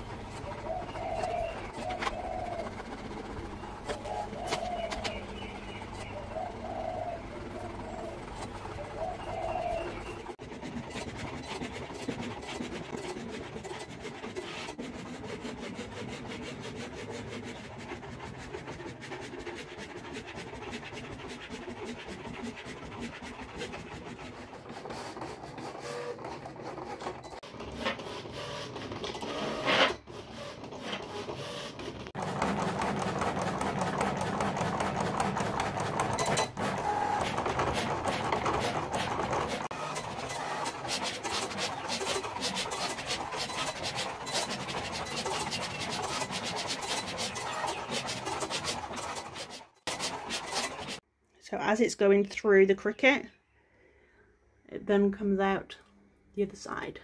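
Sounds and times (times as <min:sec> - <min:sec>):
cutting machine running: 0:22.2 - 0:51.0.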